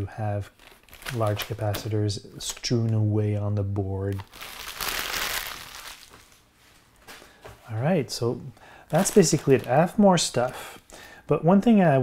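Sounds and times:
plastic bags crinkling: 0.5s - 2.0s, 4.1s - 6.4s, 8.9s - 10.6s.

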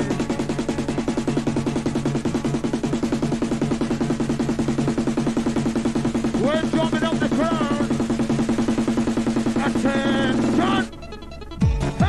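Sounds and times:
fast electronic dance music: 0.0s - 12.0s.

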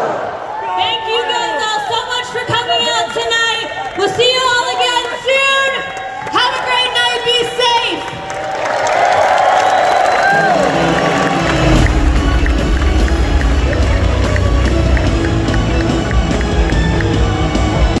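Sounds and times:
crowd cheering and shouting: 0.0s - 18.0s
music with heavy bass line: 10.7s - 18.0s.

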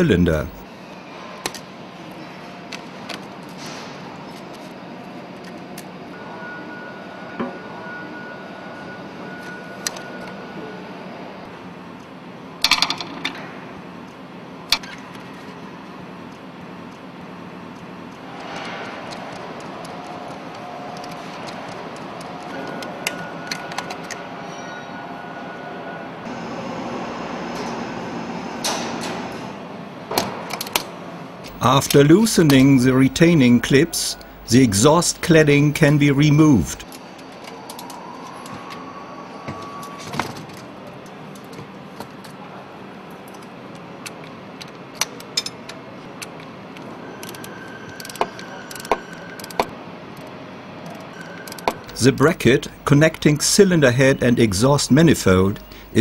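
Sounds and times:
workshop hum: 0.0s - 56.0s.

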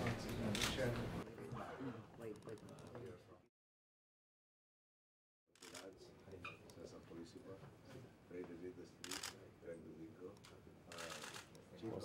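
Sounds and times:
faint conversation: 0.0s - 3.5s, 5.6s - 12.0s
rapid camera shutter clicks: 9.0s - 9.4s, 10.9s - 11.6s.

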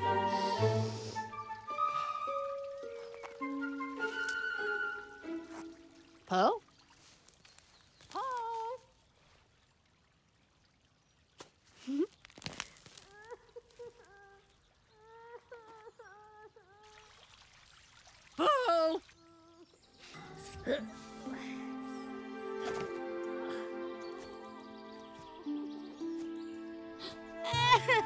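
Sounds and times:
soft music with held notes: 0.0s - 6.3s, 19.9s - 28.0s.

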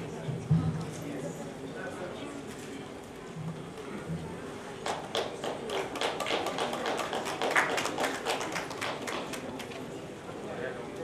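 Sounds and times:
people clapping: 4.8s - 10.0s.

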